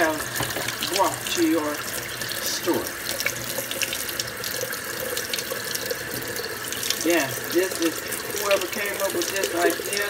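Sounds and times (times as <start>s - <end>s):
tap water running into sink: 0.0s - 10.0s.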